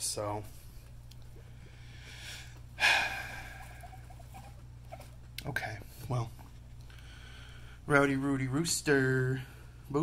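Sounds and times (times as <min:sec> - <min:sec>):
low steady hum: 0:00.0 - 0:10.0
breathy sigh: 0:01.8 - 0:03.9.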